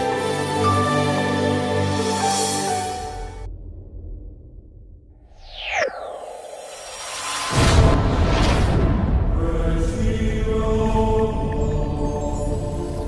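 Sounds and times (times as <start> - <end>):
falling whistling swoosh: 5.2 - 8.6.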